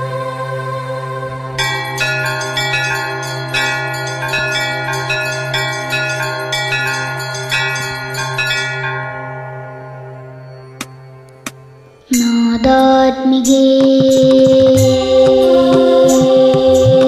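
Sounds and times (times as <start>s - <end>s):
steady low drone: 0.0s - 13.1s
bell-like chime notes: 1.6s - 17.0s.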